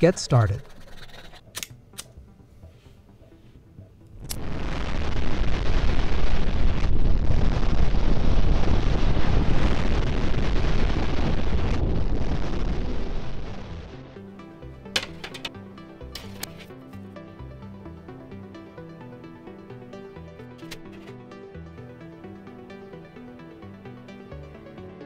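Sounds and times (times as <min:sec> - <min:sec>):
hacksaw cutting tin can: 0:00.0 - 0:01.4, 0:15.0 - 0:15.5, 0:16.2 - 0:16.7.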